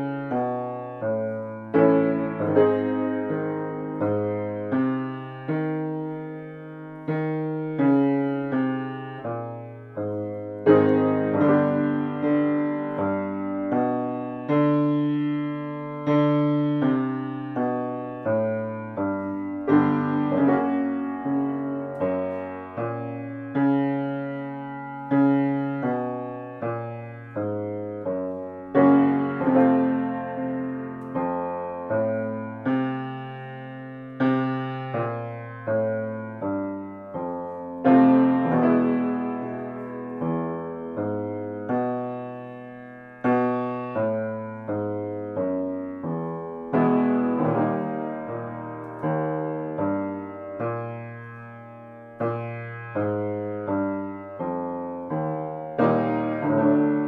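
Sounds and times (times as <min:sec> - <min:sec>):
grand piano chords: 0:00.0 - 0:57.0.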